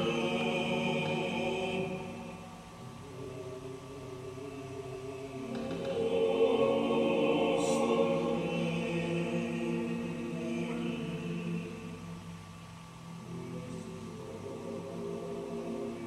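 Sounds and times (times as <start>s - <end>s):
choir singing chant-like chords: 0.0s - 16.0s.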